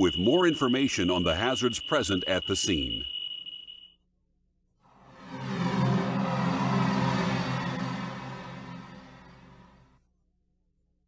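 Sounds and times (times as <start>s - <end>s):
thin steady high tone: 0.0s - 4.0s
music: 4.9s - 10.0s.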